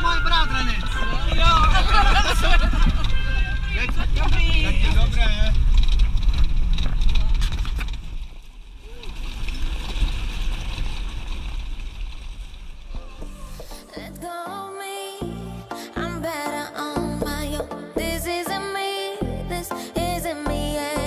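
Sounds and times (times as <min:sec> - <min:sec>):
voices: 0:00.0 - 0:05.6
wind rumble on microphone: 0:00.1 - 0:13.1.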